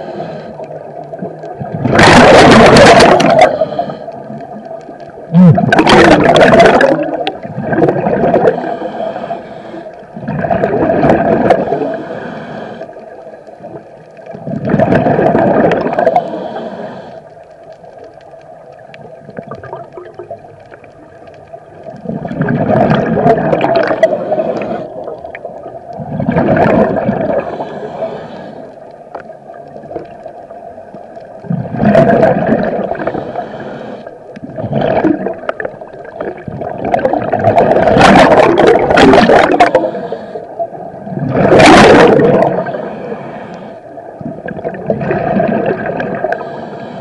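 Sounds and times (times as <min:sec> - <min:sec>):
scuba regulator exhaust bubbles: 0:00.0 - 0:09.3, 0:10.2 - 0:12.8, 0:13.6 - 0:17.1, 0:18.2 - 0:28.4, 0:31.3 - 0:46.7.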